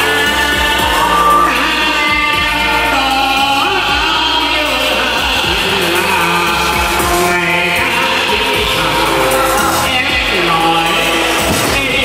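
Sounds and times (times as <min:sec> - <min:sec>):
backing music track: 0:00.0 - 0:12.0
man singing into a microphone: 0:00.0 - 0:12.0.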